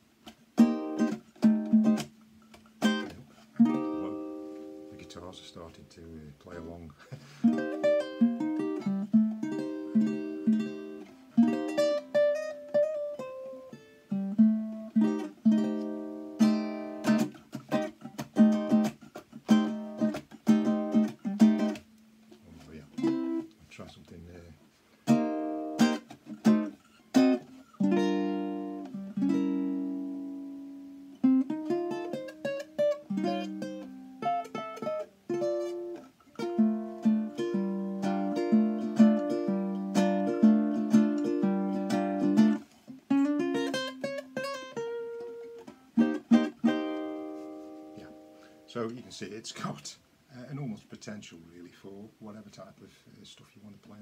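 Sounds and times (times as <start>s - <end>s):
ukulele strumming chords: 0.0s - 5.7s, 6.5s - 49.7s.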